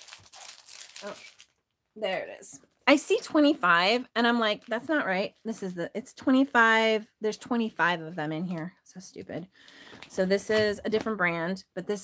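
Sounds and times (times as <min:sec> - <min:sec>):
plastic sheets crinkling: 0:00.0 - 0:02.5.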